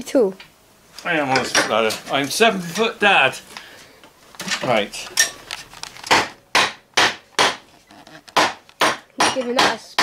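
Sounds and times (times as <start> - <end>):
wooden mallet knocking wood: 6.1 - 7.6, 8.3 - 10.0.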